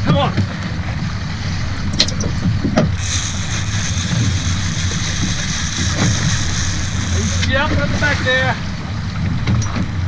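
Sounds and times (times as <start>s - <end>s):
outboard motor running: 0.0s - 10.0s
fishing reel drag whine: 1.5s - 9.8s.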